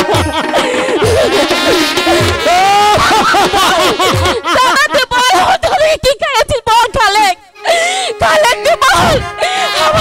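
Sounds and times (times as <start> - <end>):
person wailing in lament: 0.9 - 5.6, 8.1 - 10.0.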